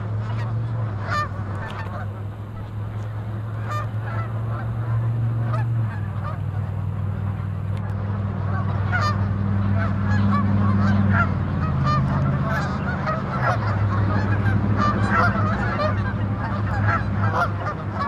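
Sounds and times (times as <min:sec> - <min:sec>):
geese honking: 0:00.0 - 0:18.0
steady low hum: 0:00.0 - 0:18.0.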